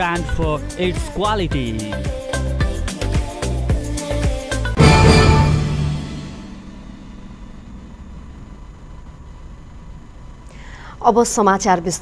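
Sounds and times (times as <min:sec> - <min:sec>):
news intro sting: 0:04.8 - 0:08.8
low background hum: 0:05.6 - 0:12.0.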